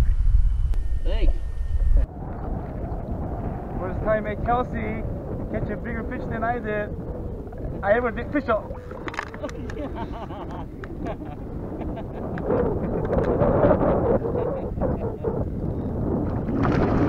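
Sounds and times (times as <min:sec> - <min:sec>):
low rumble: 0:00.0 - 0:17.0
wind buffeting microphone: 0:00.0 - 0:17.0
people laughing: 0:09.2 - 0:13.4, 0:14.2 - 0:15.3.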